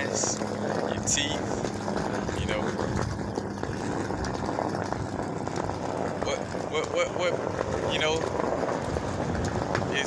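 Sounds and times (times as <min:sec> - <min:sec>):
low rumble of outdoor background: 0:00.0 - 0:10.0.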